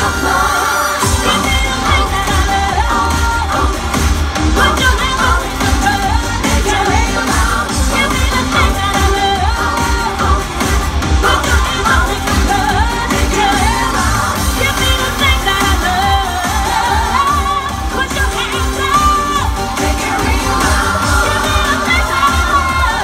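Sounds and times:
amplified backing music with beat: 0.0 - 23.0
person singing pop song live: 0.0 - 23.0.

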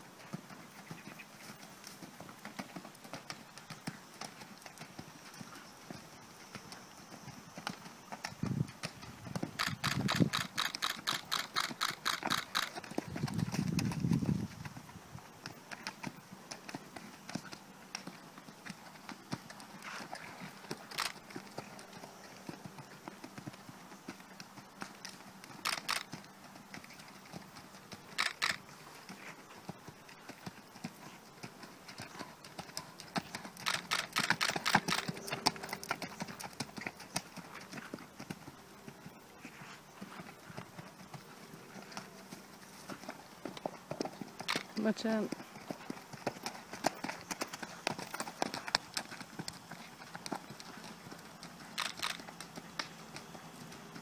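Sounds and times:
horse hooves trotting on sand: 0.0 - 54.0.

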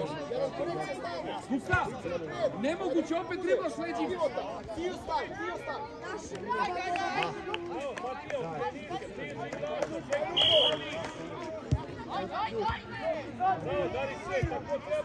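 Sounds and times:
players calling out: 10.2 - 11.4
sharp whistle blast: 10.4 - 11.0.

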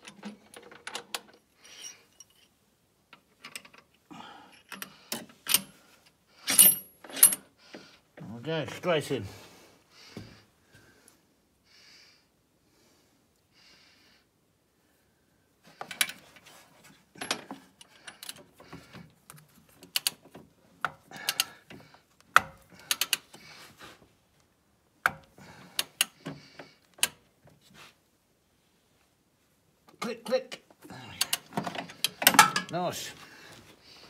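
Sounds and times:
metal parts clicking and rattling: 0.0 - 2.5, 22.8 - 23.3, 31.1 - 32.8.

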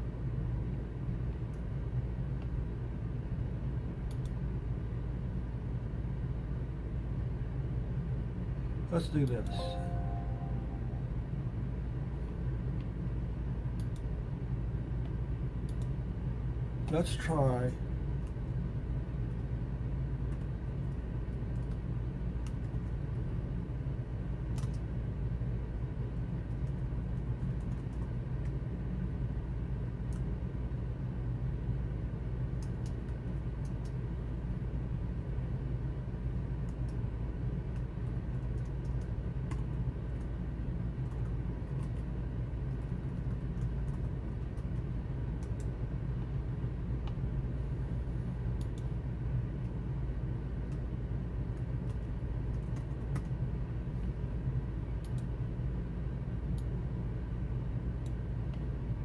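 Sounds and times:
low hum: 9.0 - 11.9.

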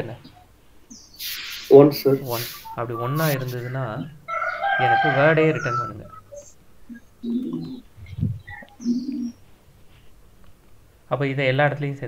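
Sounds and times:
bird cooing: 5.6 - 9.4.

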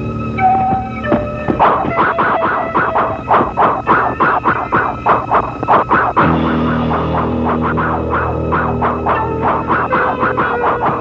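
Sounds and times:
faint sustained music: 0.0 - 11.0.

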